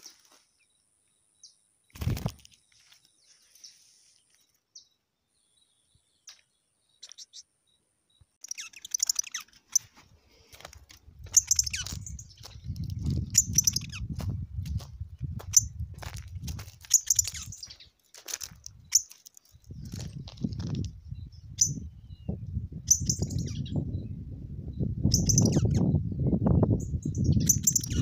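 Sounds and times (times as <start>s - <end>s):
songbirds chirping: 0.0s - 28.0s
footsteps: 9.5s - 13.4s, 14.0s - 20.9s.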